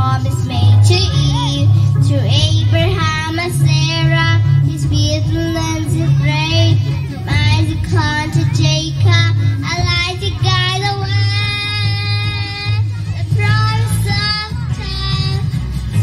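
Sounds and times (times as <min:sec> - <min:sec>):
backing track with bass line: 0:00.0 - 0:16.0
girl singing into microphone: 0:00.0 - 0:16.0.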